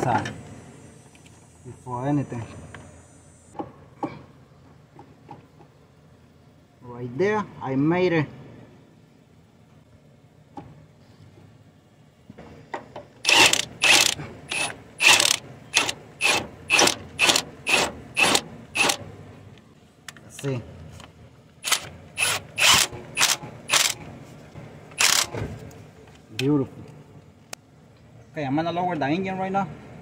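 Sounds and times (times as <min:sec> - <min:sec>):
power tool spinning bolts: 0:13.2 - 0:19.0, 0:21.6 - 0:24.0, 0:25.0 - 0:25.3.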